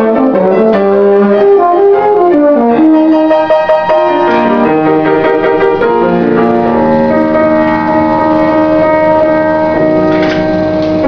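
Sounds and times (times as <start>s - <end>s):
piano accompaniment: 0.0s - 11.0s
euphonium holding a long note: 1.2s - 11.0s.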